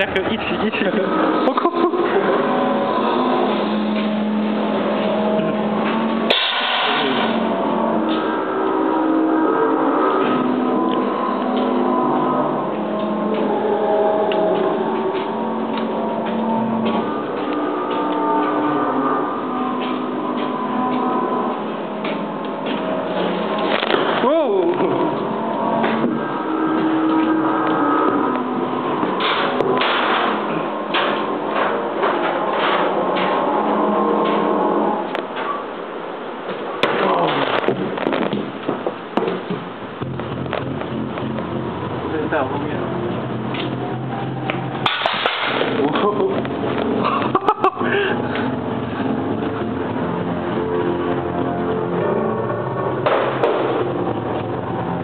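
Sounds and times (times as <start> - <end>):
eerie sustained low tones: 0.0 - 35.9, 40.0 - 55.0
sharp hit: 6.2 - 8.4, 44.8 - 46.2.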